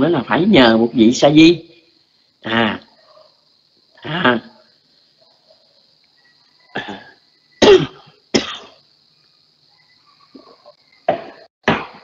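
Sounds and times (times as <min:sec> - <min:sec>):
faint high hiss: 0:00.0 - 0:12.0
person coughing: 0:06.7 - 0:08.8, 0:11.1 - 0:12.0.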